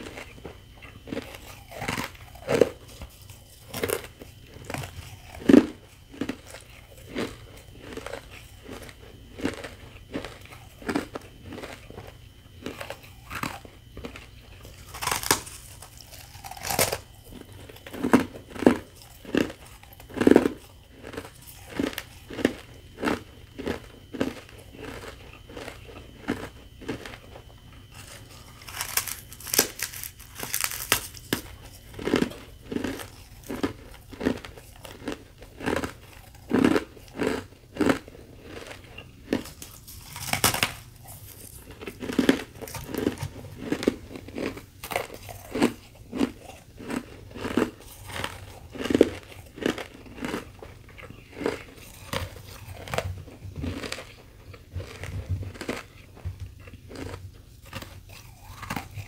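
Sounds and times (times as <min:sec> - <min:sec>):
crunching ice: 0:00.0 - 0:59.0.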